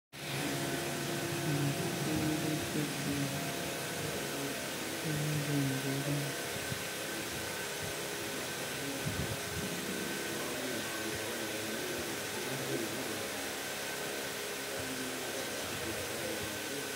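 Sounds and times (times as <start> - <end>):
faint voices: 0.2 - 16.9
steady background hiss: 0.2 - 16.9.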